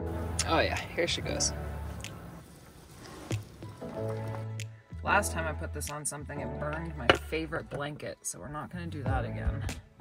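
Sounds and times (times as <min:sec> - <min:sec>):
background music: 0:00.0 - 0:10.0
water bubbling and boiling: 0:02.4 - 0:04.7.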